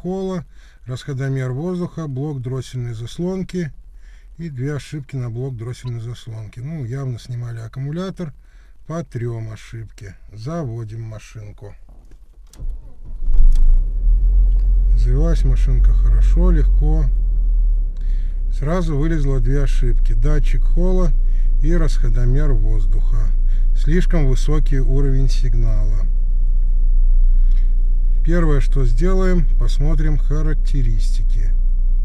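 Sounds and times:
car starter cranking: 11.8s - 15.4s
car engine revving and idling: 12.5s - 32.0s.

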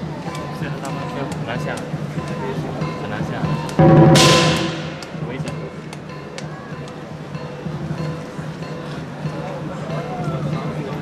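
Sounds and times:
cymbal crash ringing: 3.8s - 5.8s
drum beat: 3.8s - 5.9s.

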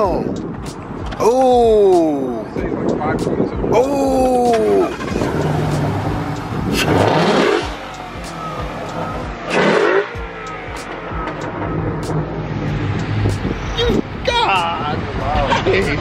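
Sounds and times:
car engine idling and revving: 0.0s - 16.0s.

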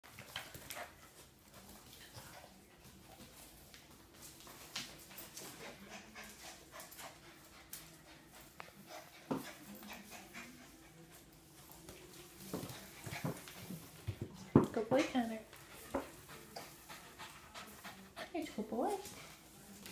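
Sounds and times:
dogs panting: 0.0s - 19.9s
dogs scuffling: 0.0s - 19.9s.

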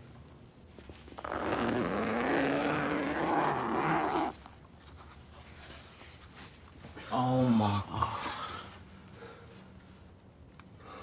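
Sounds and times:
zipper pulled open: 1.2s - 4.5s.

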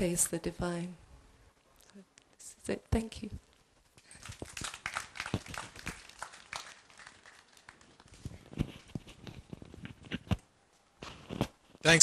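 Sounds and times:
audience applauding: 4.1s - 8.3s.

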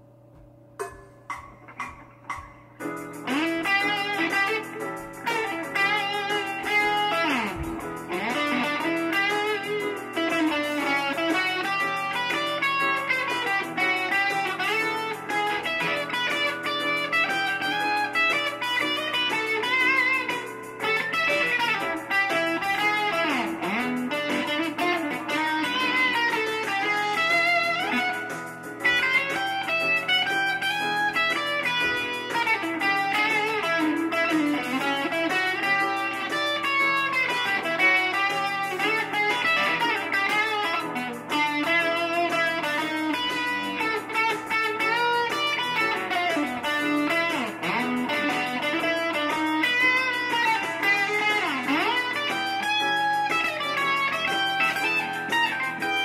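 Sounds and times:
electric guitar with bent notes: 0.0s - 56.0s.

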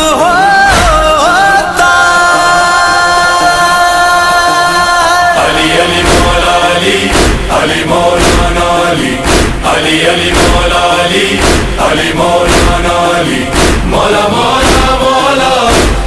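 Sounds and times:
men chanting devotional song: 0.0s - 16.0s
music with sharp beats: 0.0s - 16.0s.

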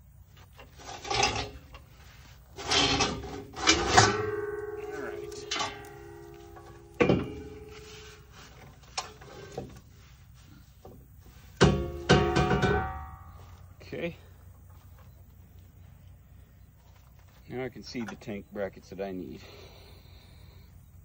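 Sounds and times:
metal clanks: 0.6s - 9.9s, 10.8s - 15.1s
hollow metal tank ringing: 2.6s - 8.3s, 11.6s - 14.2s.

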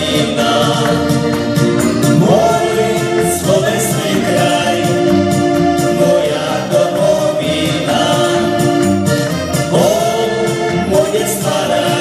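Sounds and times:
electronic keyboards: 0.0s - 12.0s
men singing: 0.0s - 12.0s
steady drum beat: 0.0s - 12.0s.

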